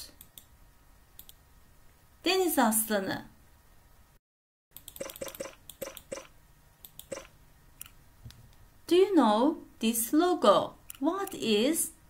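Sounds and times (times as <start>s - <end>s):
faint computer mouse clicks: 0.1s - 0.5s, 1.2s - 1.4s, 6.8s - 8.6s.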